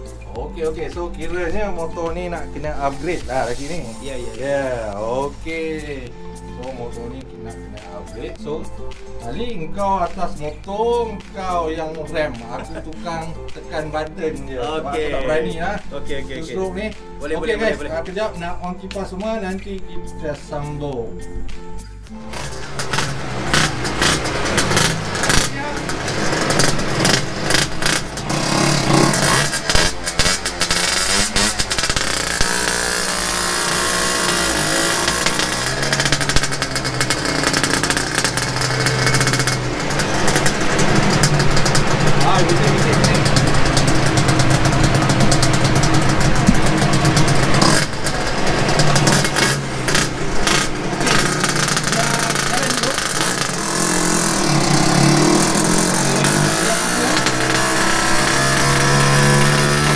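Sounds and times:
two-stroke motorcycle engine revving: 0:00.0 - 0:09.3, 0:22.1 - 0:59.9.

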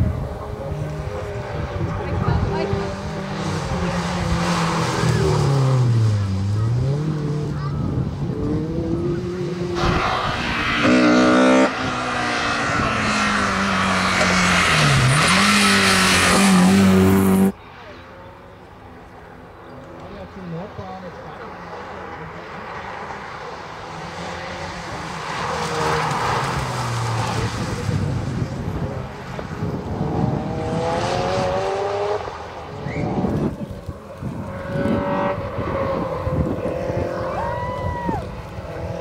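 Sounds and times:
car engines revving hard: 0:00.0 - 0:17.6, 0:18.2 - 0:39.0.

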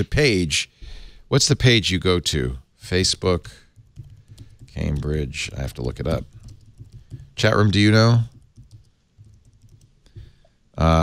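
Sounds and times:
laptop keyboard typing: 0:03.6 - 0:10.4.

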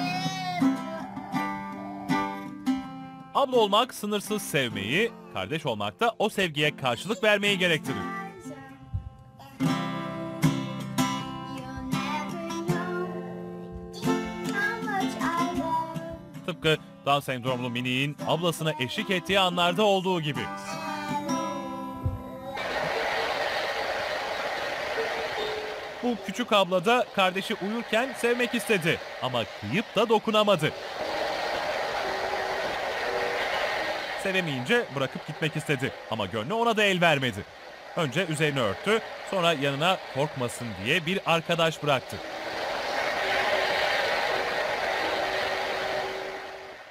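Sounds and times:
girl singing with guitar: 0:00.0 - 0:02.6, 0:07.8 - 0:17.5, 0:20.4 - 0:22.6
steady hiss-like rushing noise: 0:22.6 - 0:46.9.

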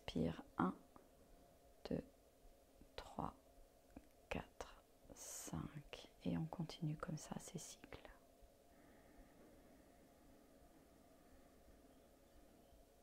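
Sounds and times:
woman whispering: 0:03.0 - 0:03.4, 0:04.3 - 0:08.2.

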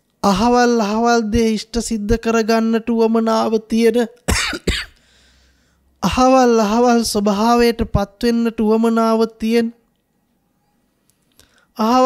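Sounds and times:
faint low hum: 0:00.0 - 0:12.0
man coughing: 0:04.3 - 0:05.0.

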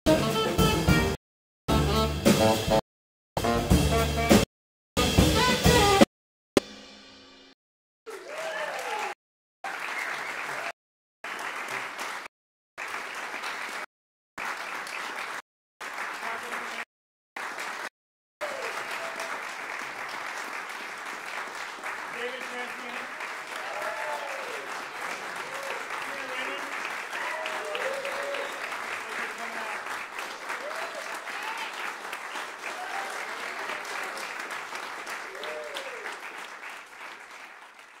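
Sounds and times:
voices calling out and cheering: 0:08.1 - 0:09.2, 0:22.2 - 0:29.8, 0:30.5 - 0:31.9, 0:32.6 - 0:34.1, 0:35.2 - 0:36.1
audience applauding: 0:08.1 - 0:38.0.

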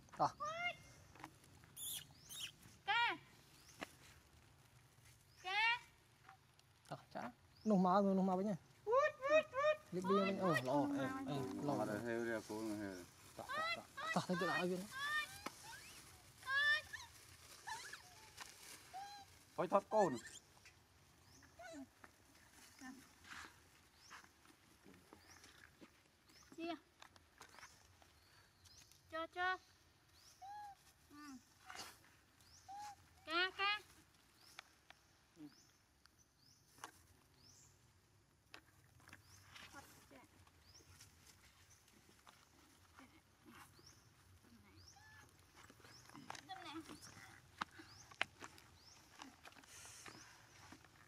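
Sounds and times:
macaques squeaking and calling: 0:01.7 - 0:02.7, 0:13.4 - 0:20.8
thin high chirp: 0:01.8 - 0:02.6
clicks and rustling of plastic bag: 0:14.5 - 0:19.6.

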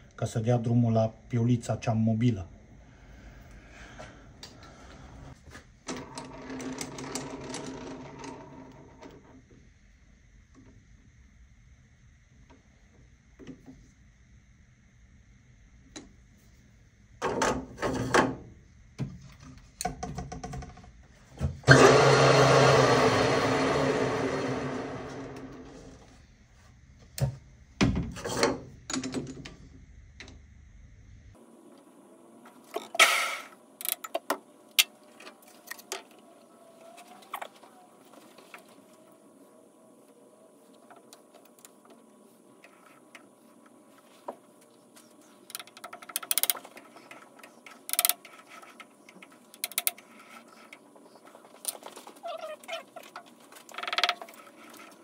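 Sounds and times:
lathe machine noise: 0:21.7 - 0:25.9.

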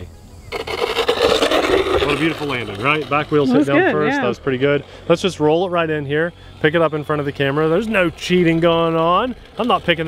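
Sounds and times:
wheels rolling on asphalt: 0:00.0 - 0:10.0.

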